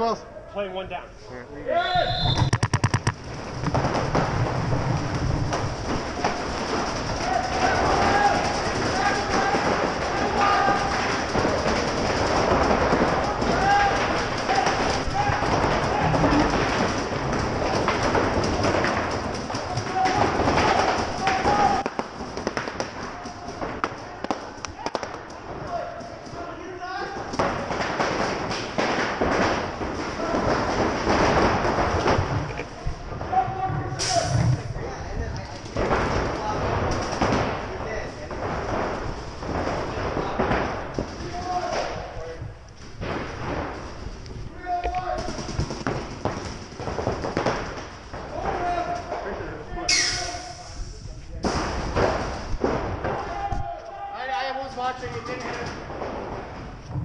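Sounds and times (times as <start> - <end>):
paintball impacts and marker fire: 2.2 - 26.4, 27.2 - 32.8, 42.8 - 49.3, 49.9 - 50.8, 51.4 - 53.6
players shouting: 6.0 - 22.0.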